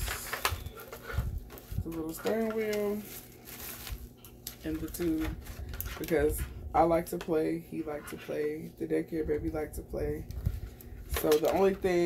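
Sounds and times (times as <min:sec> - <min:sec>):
plastic bag rustling: 0:00.0 - 0:06.5.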